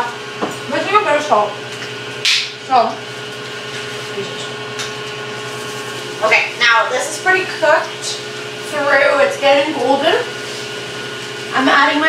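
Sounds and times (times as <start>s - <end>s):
range hood extractor fan humming: 0.0s - 12.0s.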